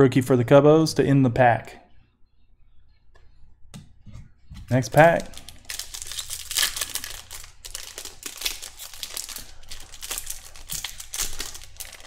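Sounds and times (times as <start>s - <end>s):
wrapper tearing and crinkling: 4.7s - 12.0s.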